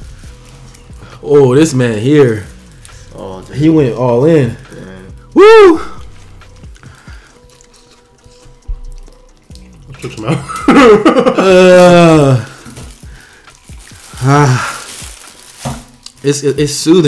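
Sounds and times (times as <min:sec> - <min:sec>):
man exclaiming loudly: 0:05.4 - 0:06.0
men laughing: 0:10.1 - 0:12.5.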